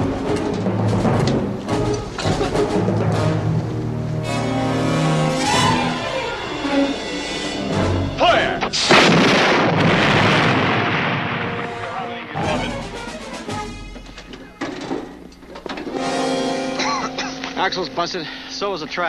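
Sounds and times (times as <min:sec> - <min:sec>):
dramatic film score: 0:00.0 - 0:15.1, 0:15.8 - 0:19.0
sharp cracks: 0:08.6 - 0:12.4
heavy gun blast: 0:08.6 - 0:12.8
shell explosion: 0:08.7 - 0:12.6.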